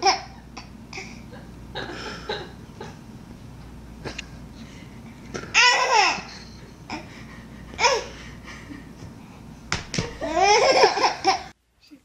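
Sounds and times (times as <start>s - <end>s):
baby laughing: 5.5s - 7.1s, 7.8s - 8.1s, 10.2s - 11.5s.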